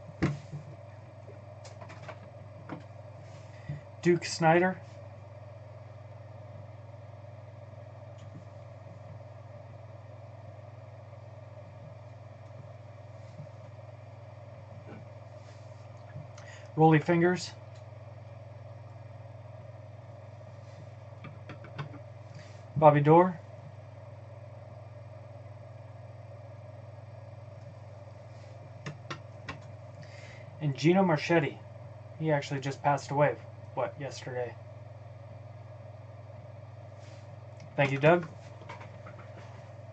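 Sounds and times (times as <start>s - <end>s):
low background hum: 0.0s - 39.9s.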